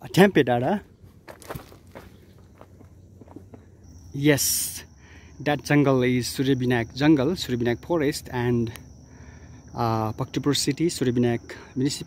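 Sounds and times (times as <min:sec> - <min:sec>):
faint footsteps: 0:01.0 - 0:03.8.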